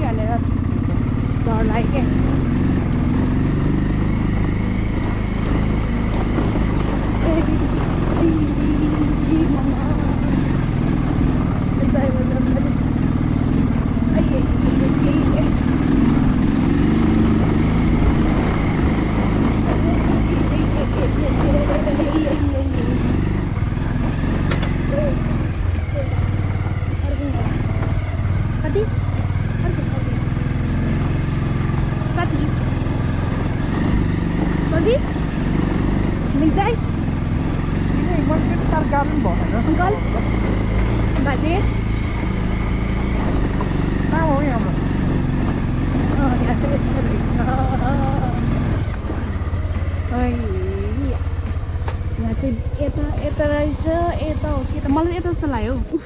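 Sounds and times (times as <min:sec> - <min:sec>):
motorcycle engine running: 0:00.0 - 0:56.0
tyres on stony dirt track: 0:00.0 - 0:56.0.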